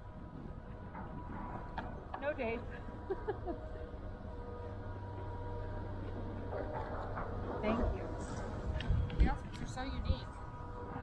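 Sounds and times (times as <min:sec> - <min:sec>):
wind on microphone: 0:06.5 - 0:11.0.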